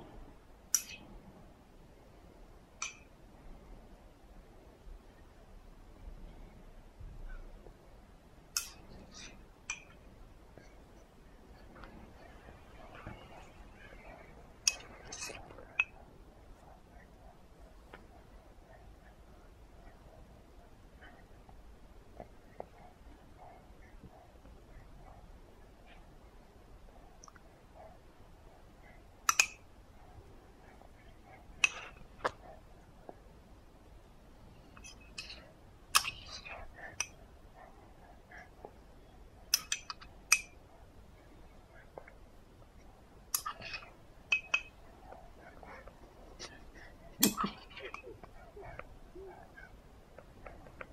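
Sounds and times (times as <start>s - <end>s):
feeding spoon clicks: 29.3s - 29.6s, 39.5s - 40.5s.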